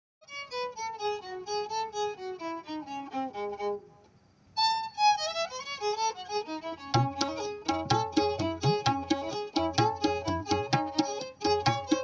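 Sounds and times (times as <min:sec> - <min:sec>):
solo violin melody: 0:00.2 - 0:12.0.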